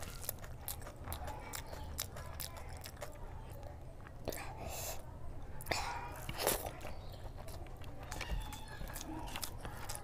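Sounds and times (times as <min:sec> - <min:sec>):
wet chewing sounds: 0:00.0 - 0:05.0, 0:05.6 - 0:10.0.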